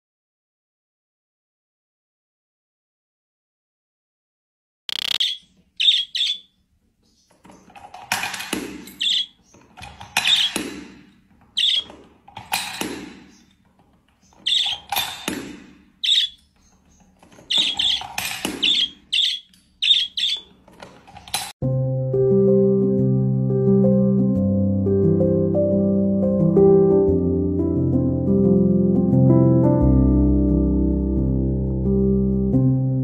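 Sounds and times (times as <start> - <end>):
parrot chirping: 4.9 - 7.4, 8.9 - 10.7, 11.6 - 12.0, 14.2 - 15.3, 16.0 - 20.6
music: 21.6 - 33.0.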